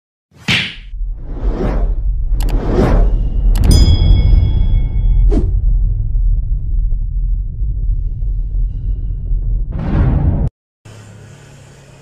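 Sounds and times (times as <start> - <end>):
low rumble: 0.9 - 10.5
whoosh: 0.9 - 10.5
sharp hit: 2.7 - 6.2.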